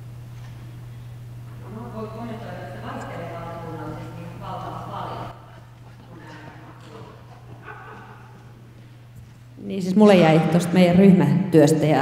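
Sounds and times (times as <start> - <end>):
steady low hum: 0.0 - 12.0
soft footsteps: 2.9 - 9.6.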